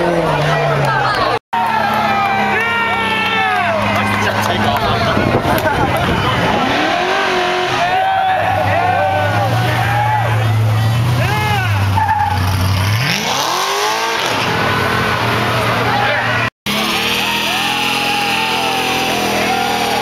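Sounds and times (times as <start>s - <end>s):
crowd shouting: 0.0s - 12.4s, 15.1s - 20.0s
car engine revving: 1.6s - 20.0s.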